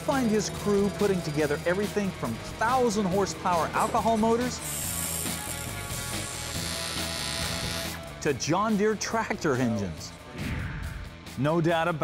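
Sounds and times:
background music: 0.0 - 12.0
welding arc buzzing: 3.8 - 8.1.

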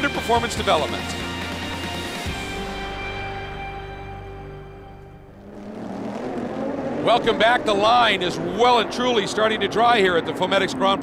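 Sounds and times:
race car engines: 3.6 - 11.0.

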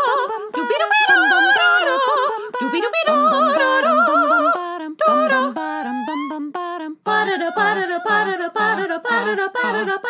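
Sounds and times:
a cappella vocal jingle: 0.0 - 10.0.

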